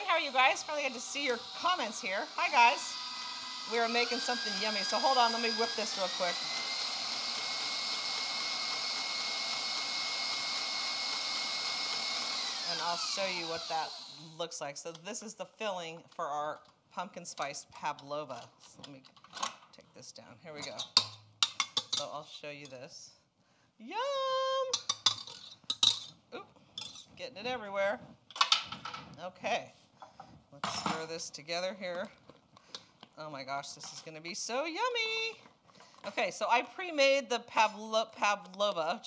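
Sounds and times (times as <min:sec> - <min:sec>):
stand mixer whirring: 0:00.4 - 0:14.2.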